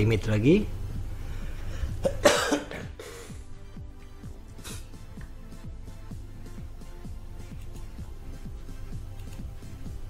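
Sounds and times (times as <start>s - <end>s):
low steady hum: 0.0s - 10.0s
person coughing: 2.0s - 3.4s.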